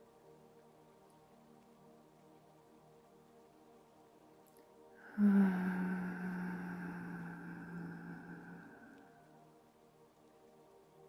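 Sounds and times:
woman humming: 0:05.0 - 0:09.2.

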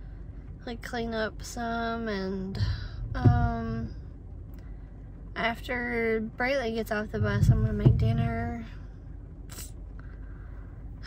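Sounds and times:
low rumble inside car: 0:00.0 - 0:11.0.

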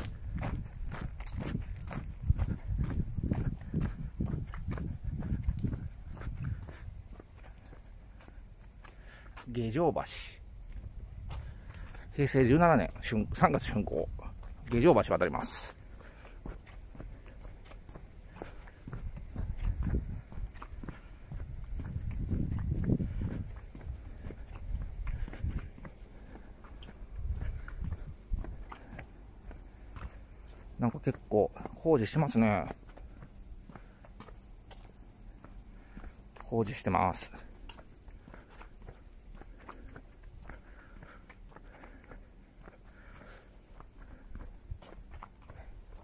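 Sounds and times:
footsteps on wooden deck: 0:00.0 - 0:46.0.

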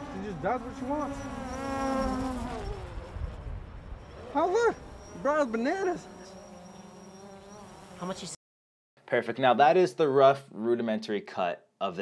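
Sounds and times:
drone buzzing whine: 0:00.0 - 0:08.4.

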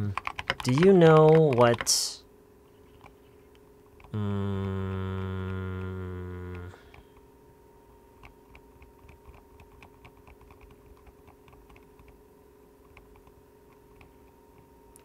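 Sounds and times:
computer keyboard typing: 0:00.0 - 0:02.1, 0:02.9 - 0:07.3, 0:08.2 - 0:12.2, 0:12.8 - 0:15.0
steady electrical hum: 0:00.0 - 0:15.0
man humming: 0:04.0 - 0:07.2.

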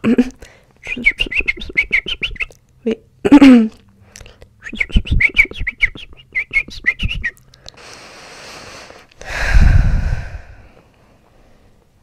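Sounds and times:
person imitating bird chirps: 0:00.8 - 0:02.6, 0:04.6 - 0:07.4
breathy hiss: 0:07.8 - 0:11.8
breathy rush of air: 0:07.8 - 0:11.8.

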